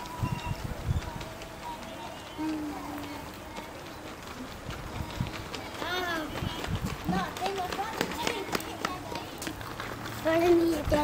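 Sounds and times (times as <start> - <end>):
footsteps on paving: 0.0 - 11.0
voices: 0.0 - 11.0.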